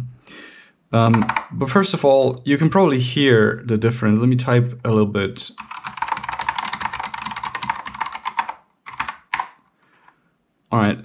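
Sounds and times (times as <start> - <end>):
keyboard typing: 1.1 - 1.6, 5.6 - 9.6.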